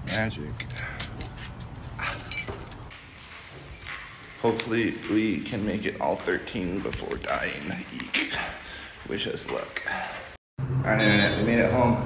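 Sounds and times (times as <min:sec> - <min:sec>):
metallic clinks and jingle: 0:00.5 - 0:01.4, 0:02.0 - 0:03.0.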